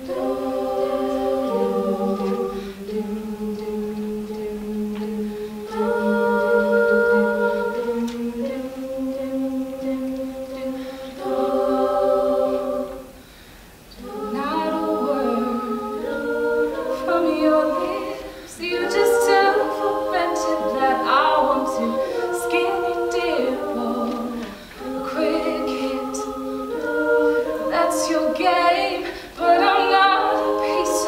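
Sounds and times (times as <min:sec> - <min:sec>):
women singing a cappella harmony: 0:00.0 - 0:31.0.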